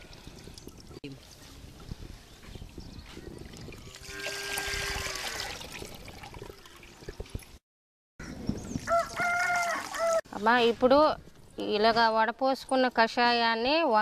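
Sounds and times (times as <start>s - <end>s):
liquid trickling into bucket: 0.0s - 1.5s, 2.7s - 7.6s, 8.8s - 10.2s
rooster crowing: 8.9s - 10.2s.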